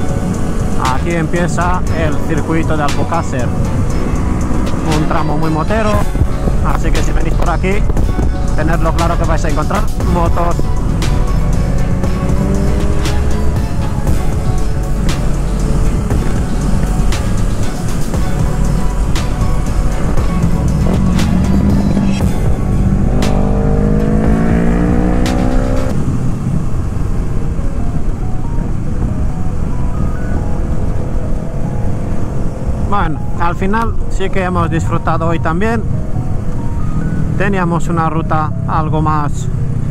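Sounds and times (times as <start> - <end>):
heavy wind rush: 0.0 - 38.6
motorcycle engine accelerating: 3.4 - 5.1, 10.0 - 27.4.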